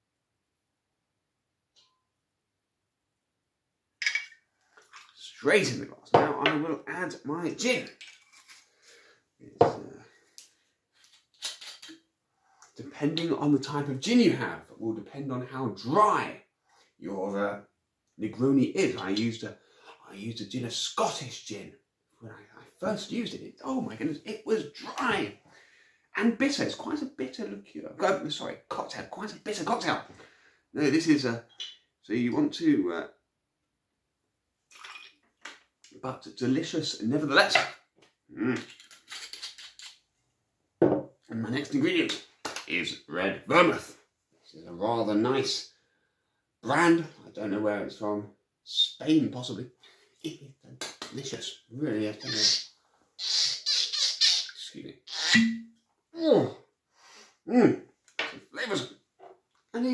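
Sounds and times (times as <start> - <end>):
glassware clinks and scrapes: 4.0 - 5.1, 8.0 - 8.6, 34.7 - 35.2
liquid splashing: 4.8 - 5.2
glass bottle knocking on table: 6.2 - 6.6, 40.8 - 41.1.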